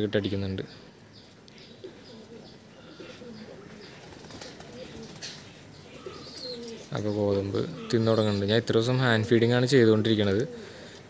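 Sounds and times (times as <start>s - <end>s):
pigeons cooing: 1.6s - 11.0s.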